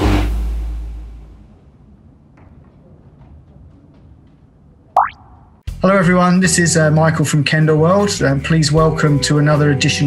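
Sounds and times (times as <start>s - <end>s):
faint background noise: 1.3s - 5.6s
rising boing transition effect: 5.0s - 5.6s.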